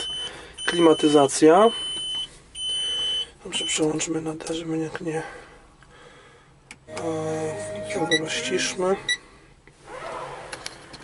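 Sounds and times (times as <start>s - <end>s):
car radio playing: 6.9s - 9.0s.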